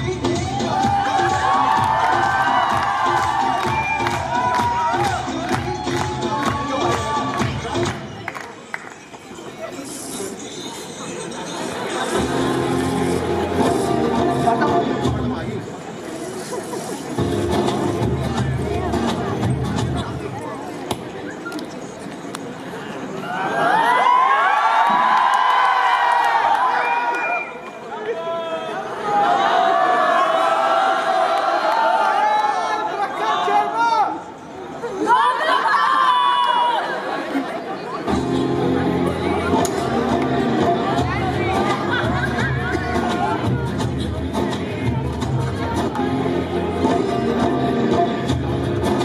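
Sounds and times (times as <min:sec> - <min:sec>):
dance music over sound system: 0:00.0 - 0:08.4, 0:09.8 - 0:15.8, 0:17.1 - 0:20.4, 0:38.1 - 0:49.0
audience cheering and whooping: 0:00.4 - 0:07.5, 0:23.2 - 0:27.6.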